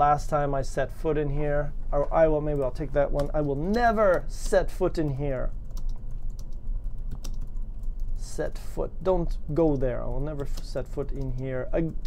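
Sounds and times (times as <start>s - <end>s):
keyboard typing: 2.0s - 8.3s, 9.5s - 12.0s.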